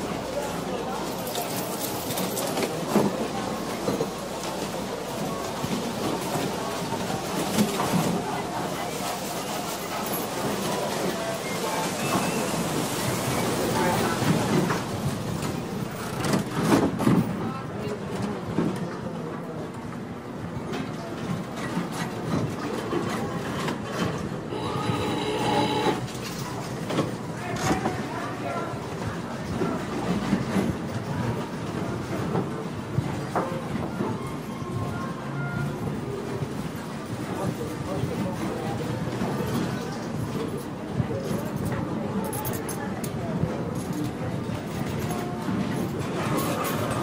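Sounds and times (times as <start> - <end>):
crowd chatter: 0.0 - 47.0
slot machine sounds: 24.5 - 26.0.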